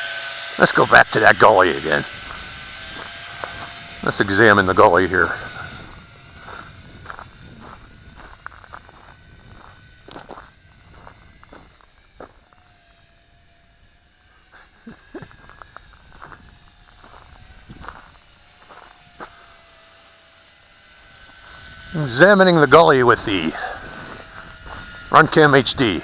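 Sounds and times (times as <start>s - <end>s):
distant quadcopter whine: 0.0s - 26.0s.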